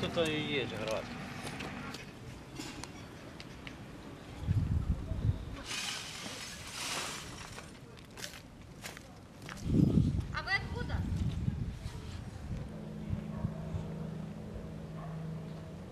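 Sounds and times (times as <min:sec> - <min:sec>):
broken glass crunching and scraping: 0:05.7 - 0:07.8.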